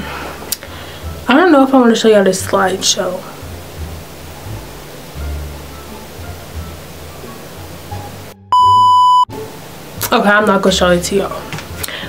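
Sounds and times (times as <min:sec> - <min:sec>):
faint background music: 0:00.0 - 0:12.0
high steady beep: 0:08.5 - 0:09.3.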